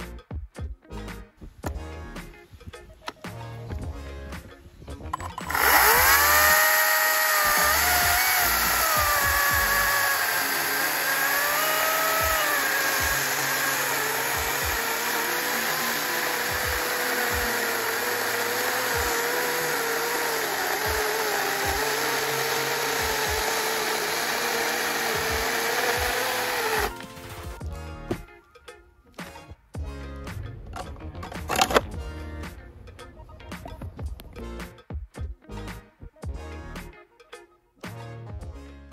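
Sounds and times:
electric chainsaw cutting log: 5.2s - 27.4s, 30.8s - 31.9s.

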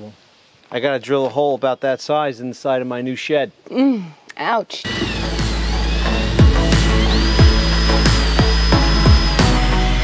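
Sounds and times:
heavy bass: 4.9s - 10.0s
high synth tone sliding up: 4.9s - 10.0s.

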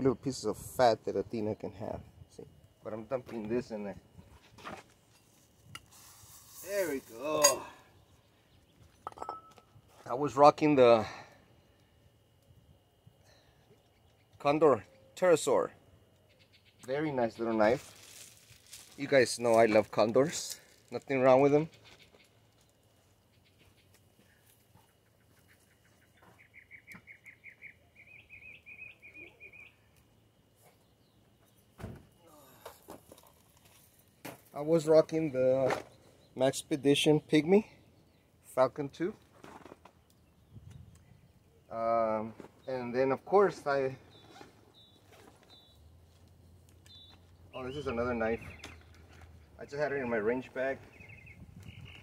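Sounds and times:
small bird chirping: 16.2s - 17.9s, 21.6s - 31.7s, 44.0s - 49.3s, 50.7s - 52.0s
thump: 31.8s - 32.1s.

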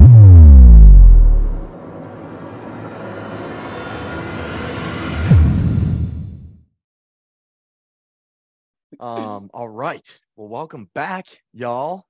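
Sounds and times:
deep bass hit dropping in pitch: 0.0s - 1.7s.

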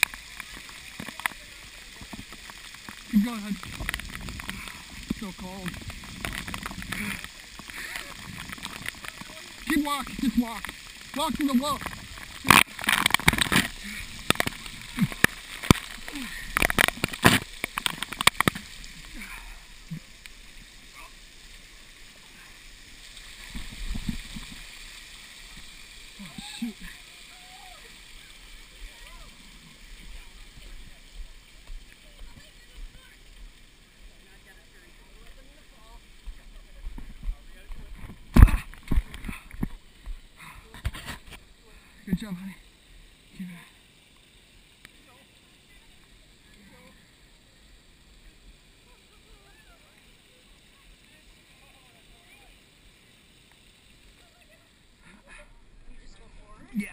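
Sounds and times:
water spray pattering on camera: 0.0s - 56.9s.

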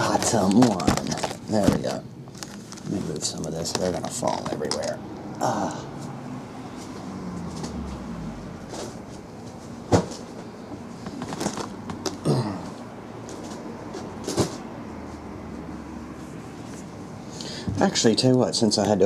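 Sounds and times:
room hum: 0.0s - 19.0s.

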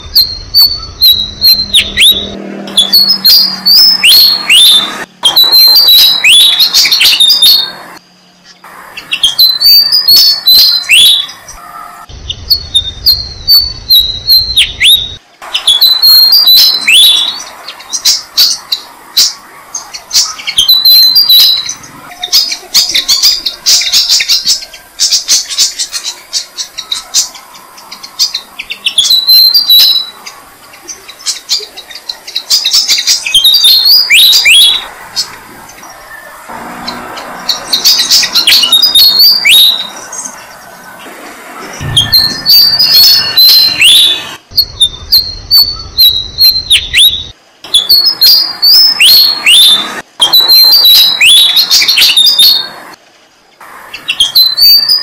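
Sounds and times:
nestlings begging chirps: 0.0s - 53.0s, 53.6s - 55.0s.

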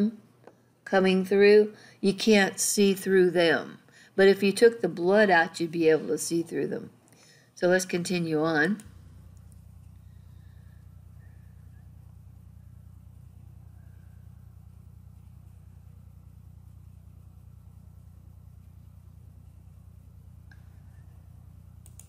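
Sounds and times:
low electrical hum with buzzing flutter: 0.0s - 22.0s.

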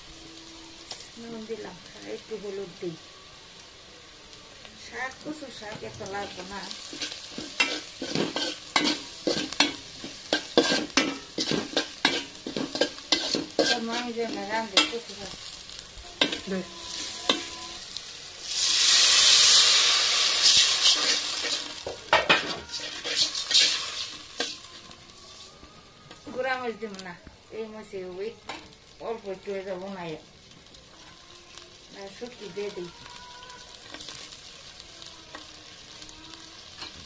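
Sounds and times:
frying sizzle: 0.0s - 37.0s
metal spatula scraping a pot: 6.3s - 15.0s, 20.4s - 25.5s
metal spoon scraping pot: 20.5s - 24.6s.

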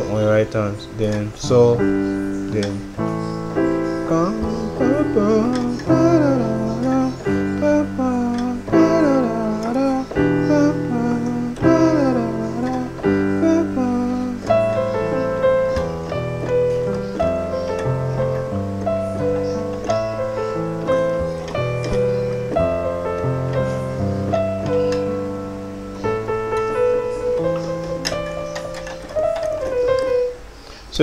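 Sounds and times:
person singing: 0.0s - 25.3s
piano chords: 0.0s - 31.0s.

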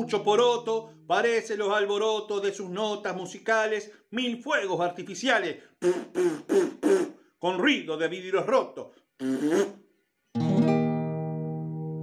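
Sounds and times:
man's voice: 0.0s - 6.2s, 7.4s - 9.0s
acoustic guitar chord ringing: 10.4s - 12.0s.

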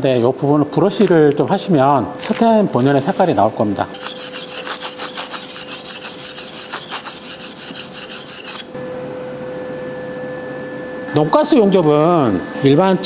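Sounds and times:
wire brush scraping metal: 3.9s - 8.7s.

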